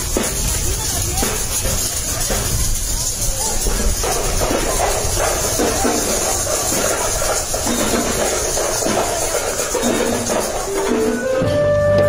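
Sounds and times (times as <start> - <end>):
outdoor hiss: 0.0 - 11.4
tambourines jingling: 0.0 - 11.4.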